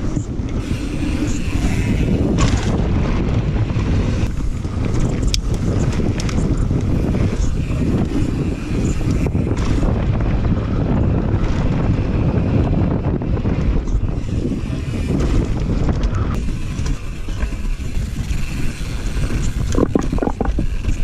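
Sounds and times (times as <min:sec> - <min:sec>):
bike clattering over bumps: 0:00.0 - 0:21.0
tyres rumbling on dirt and wood: 0:00.0 - 0:21.0
wind buffeting microphone: 0:00.0 - 0:21.0.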